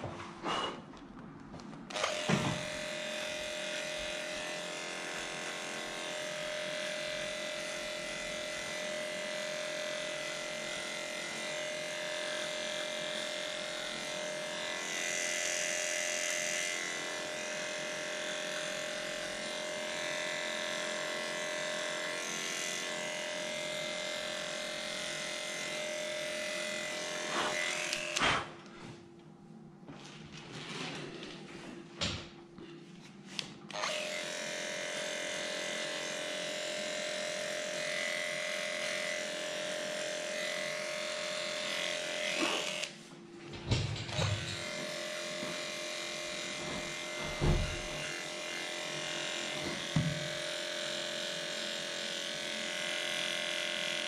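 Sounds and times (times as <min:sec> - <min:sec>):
electric clipper humming: 0:01.9 - 0:28.5, 0:33.7 - 0:43.1, 0:43.8 - 0:54.0.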